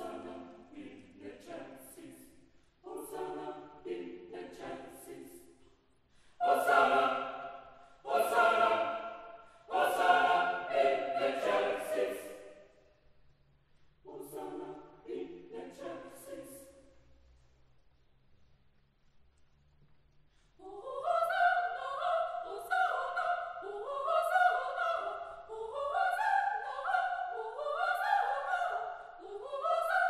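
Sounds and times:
mixed choir singing: 0:00.0 - 0:05.7, 0:06.3 - 0:12.9, 0:14.0 - 0:16.9, 0:20.6 - 0:30.0.

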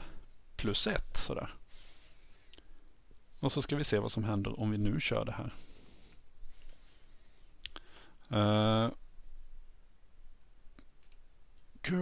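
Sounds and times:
soft computer clicks: 0:10.7 - 0:11.7.

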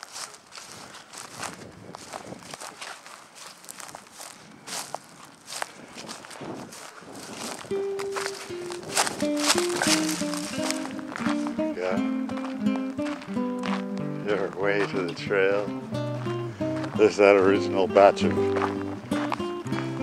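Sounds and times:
footsteps on gravel: 0:00.0 - 0:20.0
plucked guitar music: 0:07.2 - 0:20.0.

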